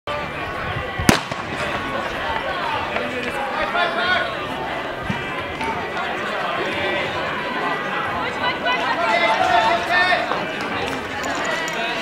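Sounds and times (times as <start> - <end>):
voices: 0.1 - 12.0
starting pistol crack: 1.1 - 2.0.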